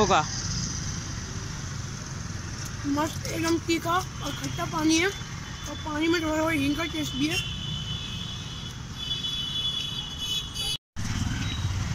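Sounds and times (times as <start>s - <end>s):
street traffic rumble: 0.0s - 11.9s.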